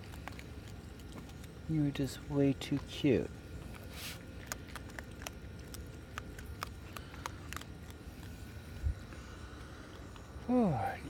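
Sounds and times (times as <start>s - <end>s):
animal crunching dry kibble: 0.0s - 11.0s.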